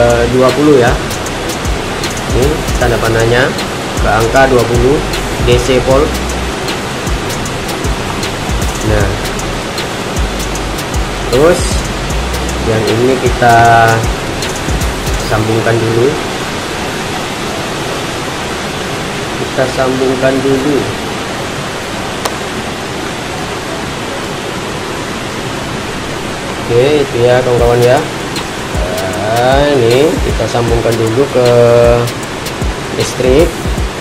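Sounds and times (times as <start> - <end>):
heavy rain hissing: 0.0 - 34.0.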